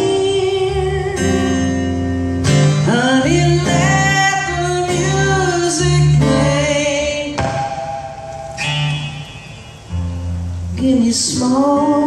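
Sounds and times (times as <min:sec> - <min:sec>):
acoustic guitar chords: 0:00.0 - 0:12.0
low bass note on guitar: 0:07.4 - 0:11.0.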